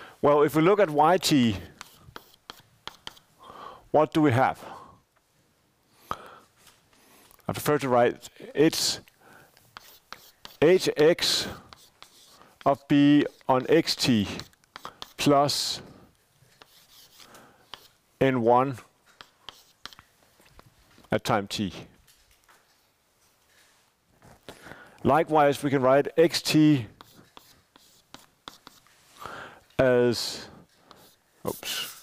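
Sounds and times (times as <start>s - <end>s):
chalk scratching on blackboard: 0.5s - 3.4s, 8.6s - 18.0s, 19.0s - 20.2s, 26.0s - 29.2s, 29.8s - 32.0s
chalk tapping on blackboard: 1.6s - 3.3s, 9.7s - 15.7s, 16.5s - 18.0s, 19.0s - 20.1s, 26.4s - 28.9s, 30.2s - 32.0s.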